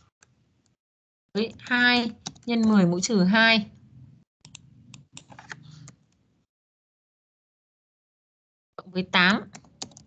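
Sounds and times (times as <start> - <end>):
computer keyboard keystrokes: 1.5 - 2.8, 4.5 - 6.0, 9.3 - 10.0.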